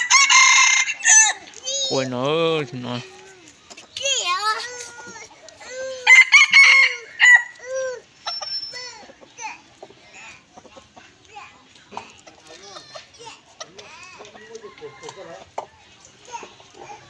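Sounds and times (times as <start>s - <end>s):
rooster crowing: 0.0s - 1.4s, 6.0s - 7.6s, 14.4s - 15.4s.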